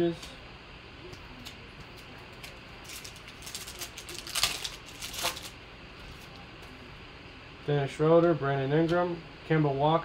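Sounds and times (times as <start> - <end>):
foil wrapper crinkling: 2.4 - 5.6.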